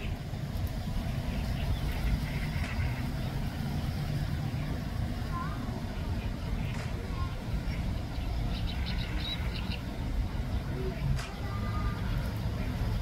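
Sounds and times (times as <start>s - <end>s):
wind buffeting microphone: 0.0s - 13.0s
faint chirp: 5.4s - 9.9s.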